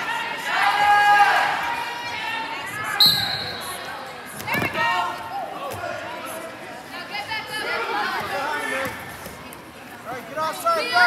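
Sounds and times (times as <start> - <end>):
people shouting in a hall: 0.0 - 3.9.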